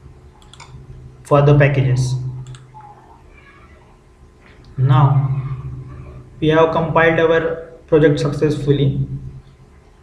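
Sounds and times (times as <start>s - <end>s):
low steady background noise: 0.0s - 10.0s
computer mouse click: 0.4s - 0.8s, 2.4s - 2.8s
man's voice: 4.8s - 5.8s, 6.4s - 9.2s.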